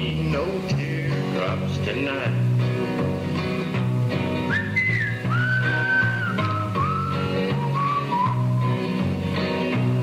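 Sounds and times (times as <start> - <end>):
strummed guitar: 0.0 - 10.0
walking bass: 0.0 - 10.0
whistled melody: 4.4 - 9.1.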